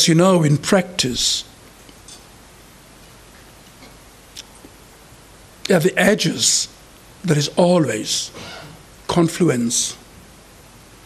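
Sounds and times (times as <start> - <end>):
microphone room hiss: 0.0 - 11.0.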